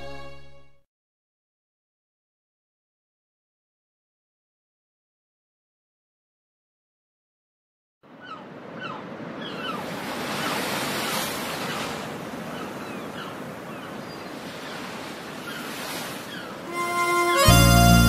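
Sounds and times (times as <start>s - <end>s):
chirping bird calls: 8.1s - 17.4s
ocean surf washing in: 8.1s - 17.6s.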